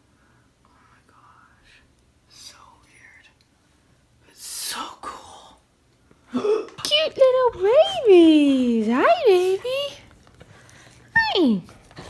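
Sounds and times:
woman whispering: 0:00.6 - 0:03.4, 0:04.3 - 0:05.6, 0:07.3 - 0:10.0.

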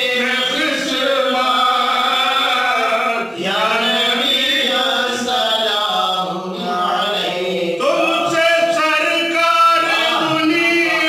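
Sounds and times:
men chanting: 0:00.0 - 0:11.0.

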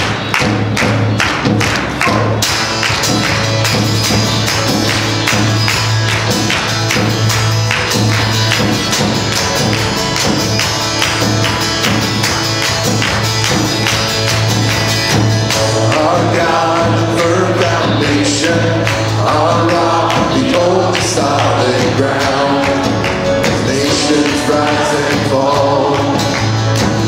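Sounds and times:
strummed acoustic guitars: 0:00.0 - 0:27.0
worship band playing: 0:00.0 - 0:27.0.

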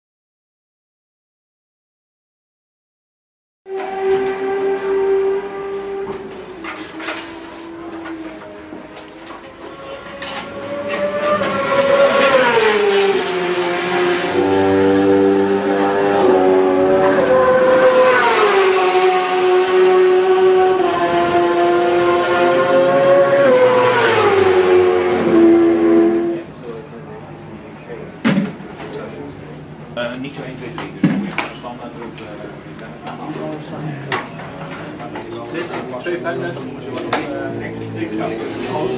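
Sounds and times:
motorcycle engine revving: 0:03.7 - 0:26.5.

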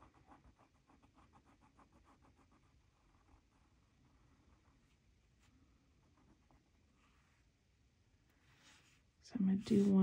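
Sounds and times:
pen scratching on paper: 0:00.0 - 0:05.0.

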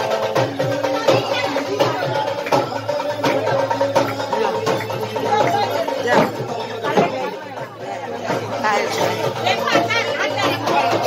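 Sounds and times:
background music: 0:00.0 - 0:11.0
crowd talking and calling: 0:00.0 - 0:11.0.

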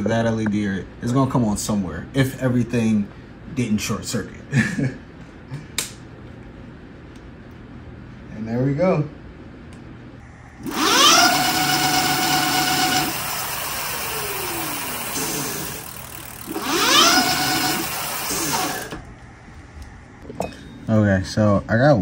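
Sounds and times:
electric motor whine: 0:10.6 - 0:19.1.

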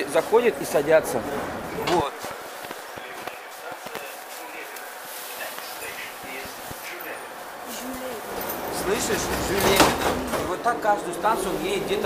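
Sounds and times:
metro station ambience hiss: 0:00.0 - 0:12.0.

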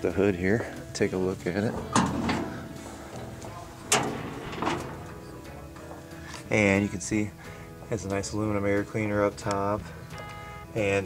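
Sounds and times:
car hood metallic clunk: 0:01.8 - 0:05.7.

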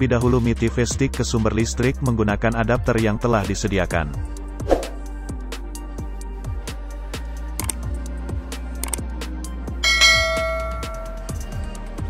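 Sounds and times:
background music with beat: 0:00.0 - 0:12.0
short clicks: 0:07.6 - 0:07.8, 0:08.8 - 0:09.0
bell chime: 0:09.8 - 0:11.6.

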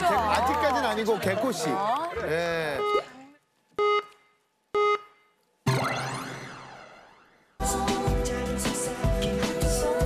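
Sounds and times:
electronic countdown beeps: 0:02.8 - 0:03.1, 0:03.8 - 0:07.0
rising synth sweep: 0:05.7 - 0:08.1.

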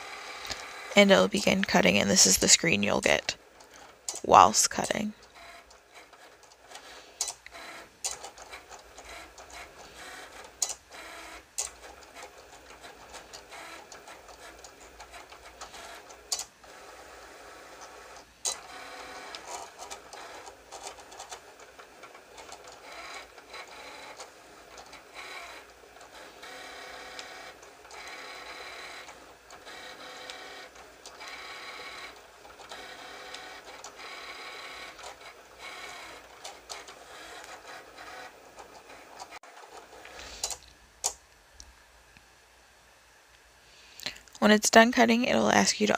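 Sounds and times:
cutting machine motors: 0:00.0 - 0:01.5, 0:02.2 - 0:40.5.

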